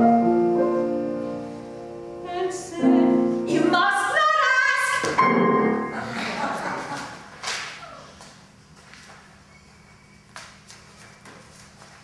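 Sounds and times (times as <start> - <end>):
grand piano accompaniment: 0.0 - 3.8, 5.0 - 6.7
woman singing: 2.2 - 5.2.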